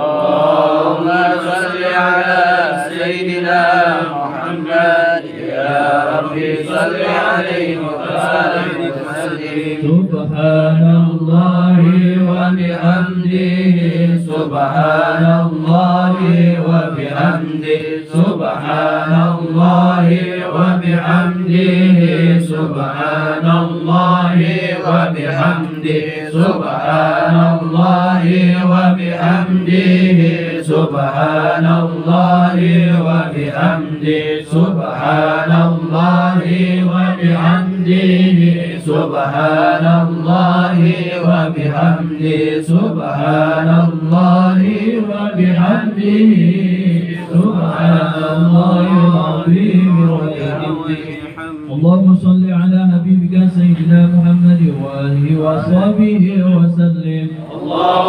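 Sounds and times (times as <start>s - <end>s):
men chanting in unison: 0.0s - 58.0s.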